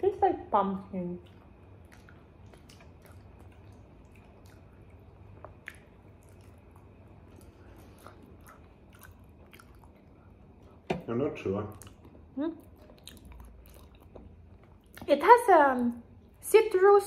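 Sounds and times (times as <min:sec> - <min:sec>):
low room hum: 0:00.0 - 0:17.0
faint chewing: 0:01.0 - 0:10.9, 0:11.6 - 0:16.4.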